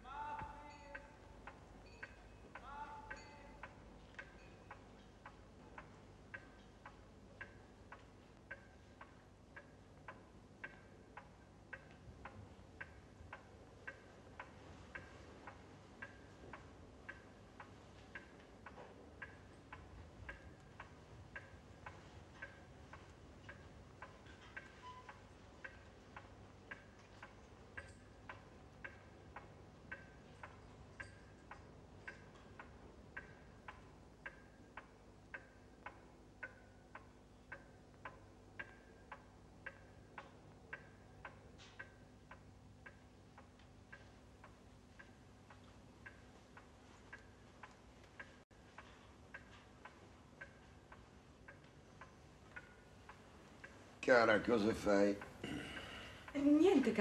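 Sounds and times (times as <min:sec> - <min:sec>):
clock ticking: 0:00.0 - 0:57.0
low steady hiss: 0:00.0 - 0:57.0.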